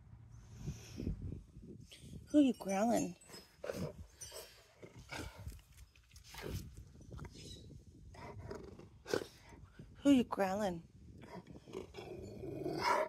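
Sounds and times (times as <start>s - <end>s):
dog growling low: 11.2s - 13.0s.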